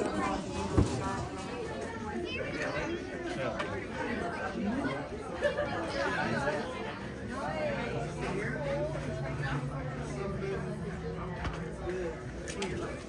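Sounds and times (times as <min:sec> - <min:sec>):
many people talking at once: 0:00.0 - 0:13.0.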